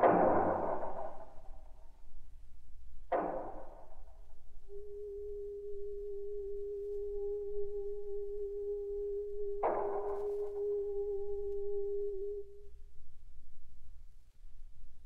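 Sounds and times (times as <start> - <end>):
sharp noisy struck attack: 0.0 - 1.8
steady synthesizer tone: 3.2 - 13.3.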